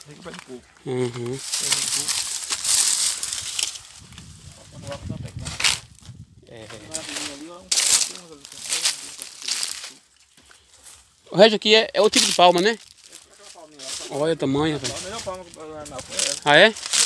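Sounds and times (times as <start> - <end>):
dry leaves rustling underfoot: 0.0 - 17.0
soft voices: 0.1 - 2.2.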